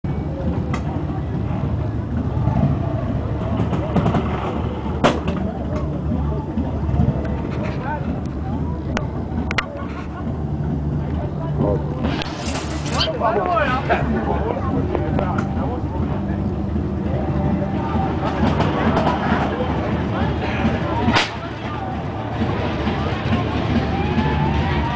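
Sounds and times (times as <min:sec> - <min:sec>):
sharp crack: 0:21.1 - 0:21.6.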